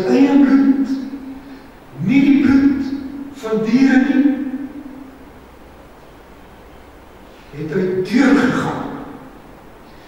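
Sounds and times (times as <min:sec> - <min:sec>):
man speaking into microphone: 0:00.0 - 0:01.3, 0:01.9 - 0:04.8, 0:07.5 - 0:09.3
faint room noise: 0:00.0 - 0:10.0.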